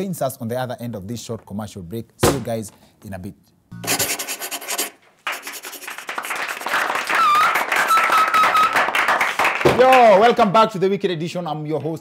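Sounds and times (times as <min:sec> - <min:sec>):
pencil scratching on paper: 0:03.8 - 0:06.1.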